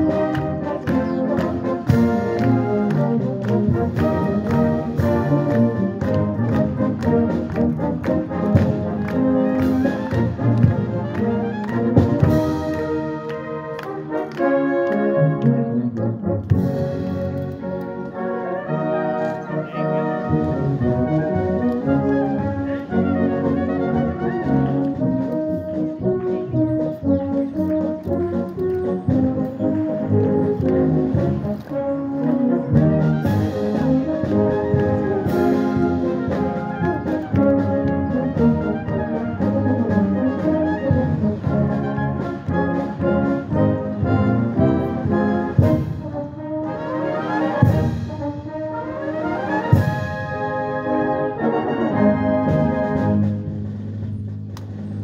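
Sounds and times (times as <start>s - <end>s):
brass band playing marches: 0.0s - 55.0s.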